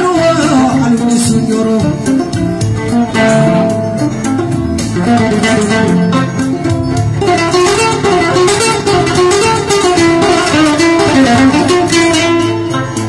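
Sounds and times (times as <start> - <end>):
plucked guitar runs: 0.0 - 13.0
sharp percussive strokes: 2.1 - 13.0.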